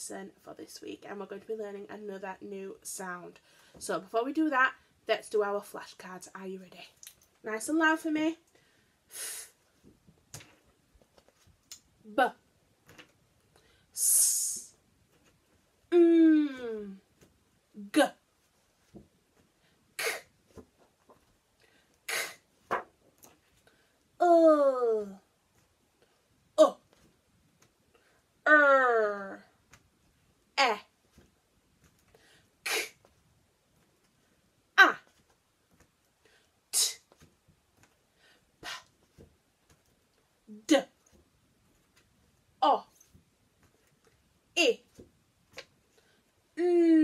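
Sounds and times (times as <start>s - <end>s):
woman saying phonics sound: 12.1s - 12.4s, 15.9s - 17.0s, 17.8s - 18.2s, 24.2s - 25.2s, 26.6s - 26.9s, 28.5s - 29.5s, 30.6s - 30.9s, 34.8s - 35.1s, 40.5s - 41.0s, 42.6s - 42.9s, 44.6s - 44.9s, 46.6s - 47.0s.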